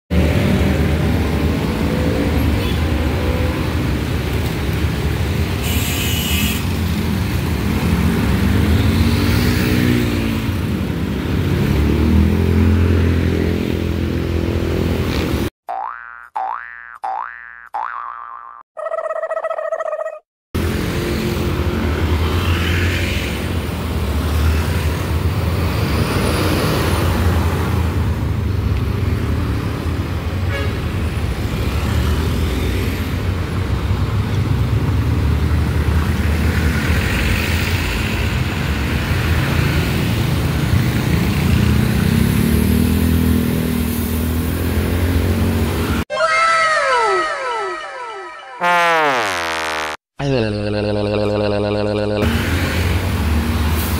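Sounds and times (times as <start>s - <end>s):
road traffic engines: 0.1s - 15.5s, 20.6s - 49.6s, 50.8s - 53.9s
cartoon boing sound effects: 15.7s - 20.2s, 46.1s - 52.4s.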